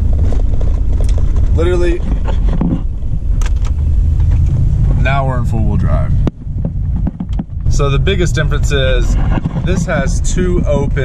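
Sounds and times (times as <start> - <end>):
car engine rumble from inside: 0.0 - 11.0.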